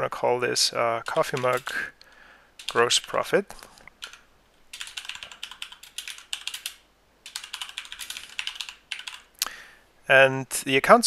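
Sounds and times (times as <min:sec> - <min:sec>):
typing on computer keyboard: 0:01.0 - 0:01.8, 0:02.6 - 0:03.3, 0:04.0 - 0:09.3.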